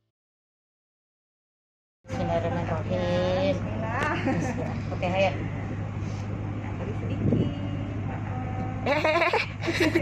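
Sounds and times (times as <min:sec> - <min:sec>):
steady low hum: 0:02.1 - 0:10.0.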